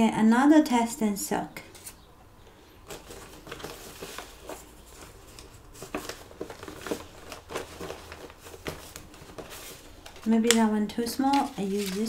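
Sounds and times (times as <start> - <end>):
paper rustling and crinkling: 2.8 - 12.0.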